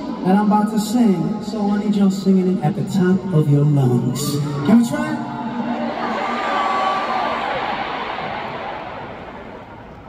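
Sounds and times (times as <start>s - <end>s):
concert crowd cheering and screaming: 3.8s - 9.9s.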